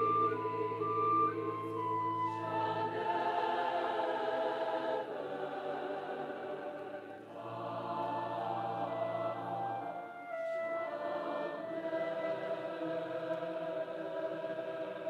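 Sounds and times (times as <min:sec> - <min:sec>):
choir singing sustained chords: 0:00.0 - 0:15.0.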